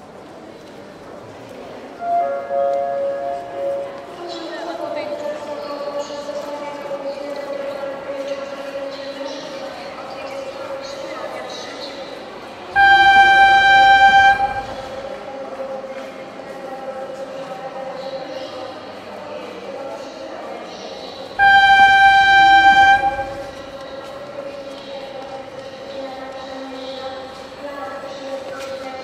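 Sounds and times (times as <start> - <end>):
steady train hum: 1.2 - 5.6, 12.2 - 17.4, 21.2 - 28.2
train horn blasts: 2.0 - 4.2, 12.8 - 15.2, 21.4 - 23.8.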